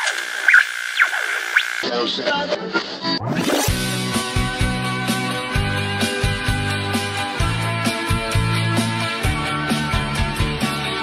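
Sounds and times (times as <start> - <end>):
radio static: 0.0 - 1.9
radio tuning whistle and squeals: 0.0 - 1.9
music from radio: 1.8 - 11.0.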